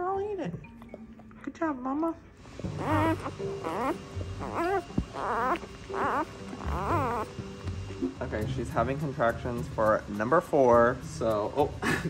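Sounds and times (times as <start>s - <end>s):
background music: 0.0s - 12.0s
puppies whimpering: 2.7s - 7.4s.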